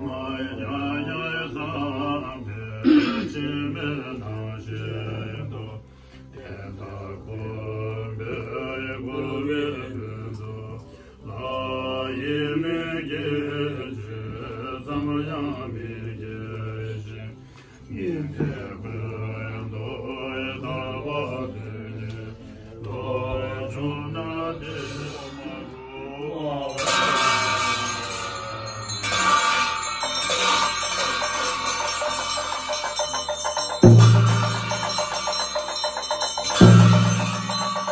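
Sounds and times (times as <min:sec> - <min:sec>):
monks chanting prayers: 0:00.0 - 0:37.9
cymbals clashing and ringing: 0:26.7 - 0:37.9.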